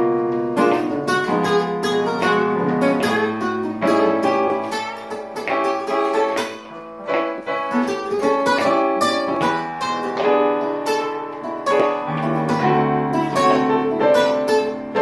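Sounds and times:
guitars playing blues: 0:00.0 - 0:15.0.

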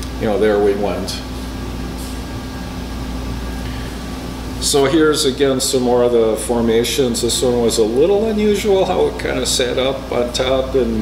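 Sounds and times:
low room hum with held tone: 0:00.0 - 0:11.0.

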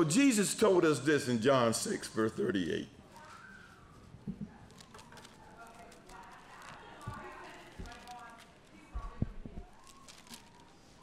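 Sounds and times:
murmuring voices: 0:03.1 - 0:10.8.

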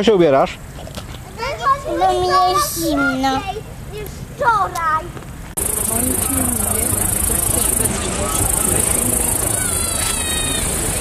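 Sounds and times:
child's voice: 0:01.4 - 0:05.2, 0:09.4 - 0:11.0
crickets chirring: 0:05.6 - 0:11.0.

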